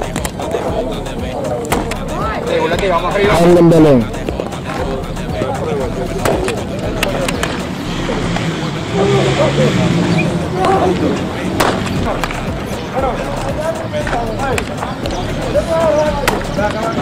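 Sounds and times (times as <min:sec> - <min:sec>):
voices carrying across field: 0:00.0 - 0:17.0
bat knocking baseballs: 0:01.6 - 0:02.1, 0:06.2 - 0:07.7, 0:11.6 - 0:12.6, 0:16.2 - 0:16.8.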